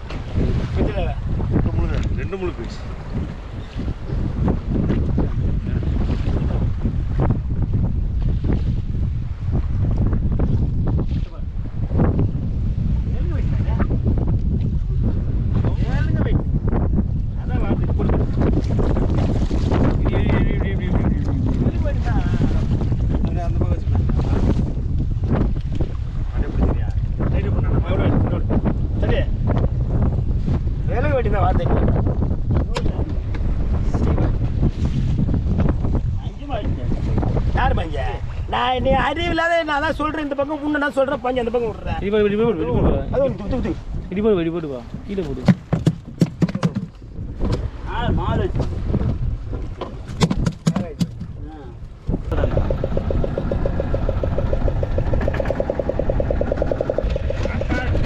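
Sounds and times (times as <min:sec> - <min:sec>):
choppy sea washing: 0:00.0 - 0:58.0
wind rumbling on microphone: 0:00.0 - 0:58.0
voices: 0:52.3 - 0:58.0.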